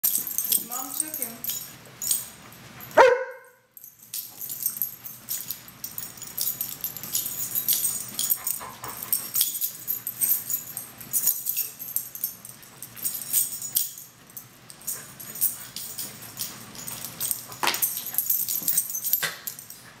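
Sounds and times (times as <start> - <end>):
collar tags jingling: 0.0 - 20.0
dog barking: 3.0 - 3.6.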